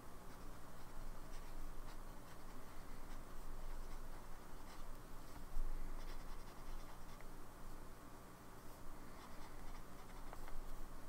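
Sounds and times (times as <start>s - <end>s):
pen nib scratching paper: 0.3s - 7.3s, 9.1s - 10.8s.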